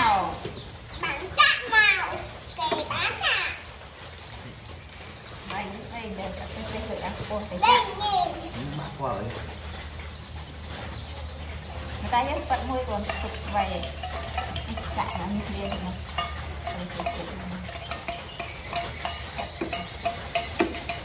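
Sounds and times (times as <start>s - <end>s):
spatula clinking against metal pot: 12.2s - 21.0s.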